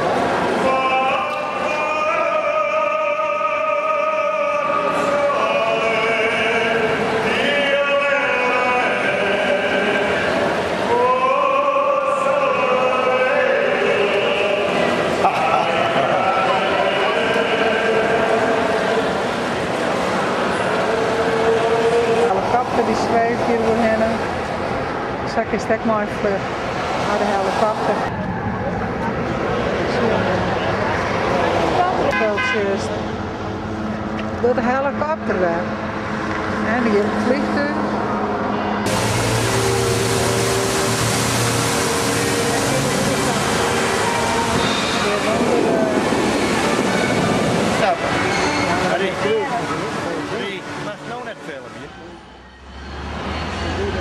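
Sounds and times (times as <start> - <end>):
crowd hubbub: 0.0 - 54.0
man singing opera style: 0.5 - 19.4, 20.6 - 23.1, 38.9 - 46.1
fountain water splashing: 38.9 - 48.2.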